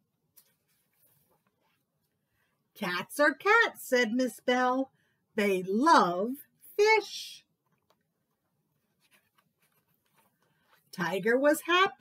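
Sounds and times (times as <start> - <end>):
page turning rustle: 0.3 - 1.9, 7.6 - 11.0.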